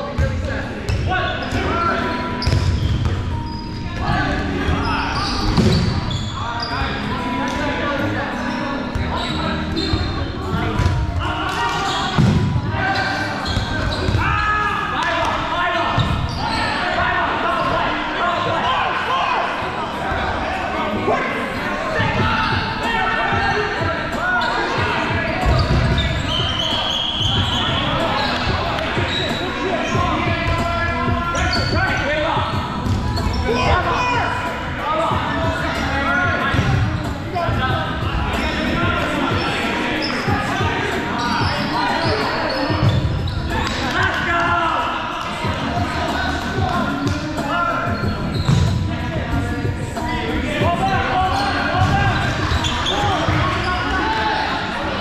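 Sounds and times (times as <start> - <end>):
players shouting: 9.1 - 48.5, 49.4 - 55.0.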